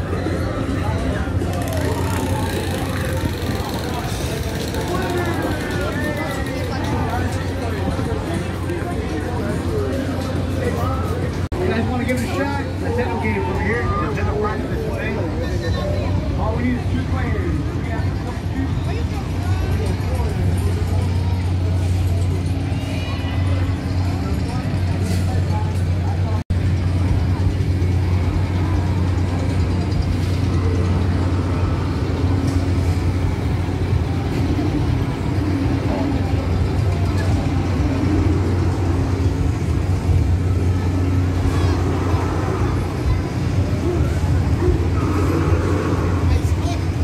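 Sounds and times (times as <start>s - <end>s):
crowd chatter: 0.0s - 47.0s
low machine hum: 0.0s - 47.0s.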